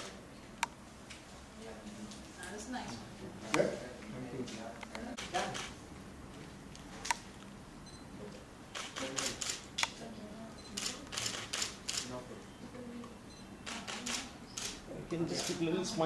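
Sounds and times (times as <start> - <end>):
camera shutters clicking: 4.8 - 5.8, 8.7 - 10.0, 10.8 - 12.1, 13.6 - 14.8.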